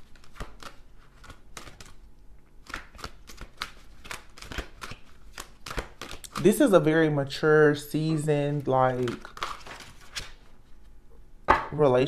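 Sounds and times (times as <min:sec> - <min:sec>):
cards being shuffled: 0:00.0 - 0:02.0, 0:02.6 - 0:06.7, 0:08.0 - 0:10.5.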